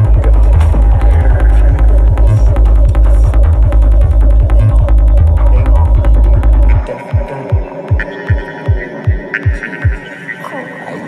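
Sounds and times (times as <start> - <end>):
kick drum thumps: 0.0 - 5.3
driving bass line: 0.0 - 10.0.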